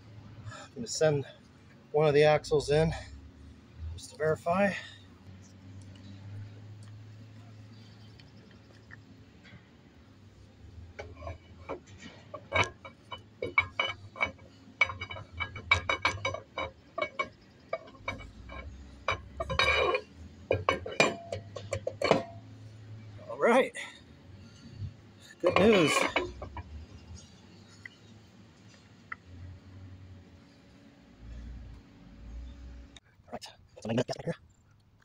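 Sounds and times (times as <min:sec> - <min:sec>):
metal clinks and clunks: 0:10.8 - 0:23.3, 0:24.4 - 0:28.0.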